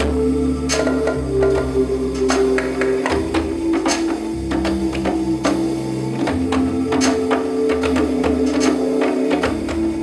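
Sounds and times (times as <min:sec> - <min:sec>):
electronic pad beats: 0:00.0 - 0:10.0
synth bass notes: 0:00.0 - 0:10.0
hand drum strokes: 0:00.7 - 0:10.0.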